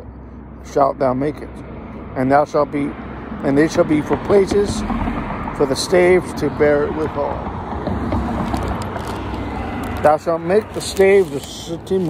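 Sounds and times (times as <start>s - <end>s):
car passing: 1.7s - 12.0s.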